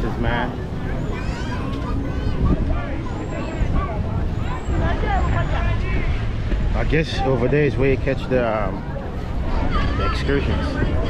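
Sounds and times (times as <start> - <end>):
people chattering: 0.0 - 11.0
wind rumble on microphone: 0.0 - 11.0.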